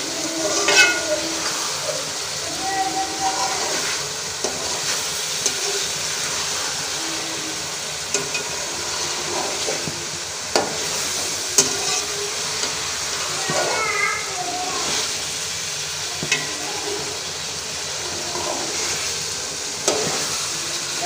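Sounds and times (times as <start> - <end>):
vegetables sizzling in oil: 0.0 - 21.0
metal spatula scraping pan: 0.2 - 1.6, 10.5 - 13.8, 19.8 - 20.4.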